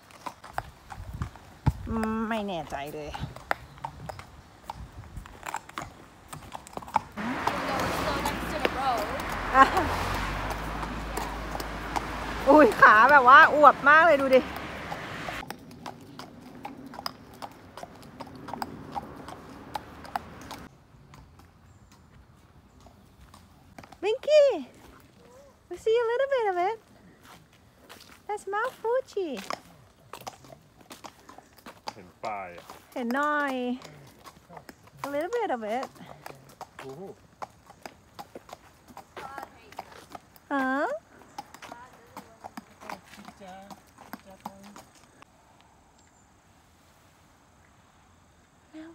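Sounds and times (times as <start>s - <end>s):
horse hooves on asphalt: 0.0s - 45.3s.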